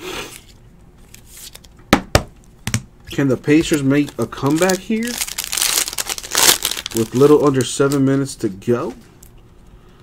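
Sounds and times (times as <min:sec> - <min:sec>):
wrapper crinkling and tearing: 0:03.4 - 0:08.3
loud wrapper rips: 0:03.7 - 0:08.0.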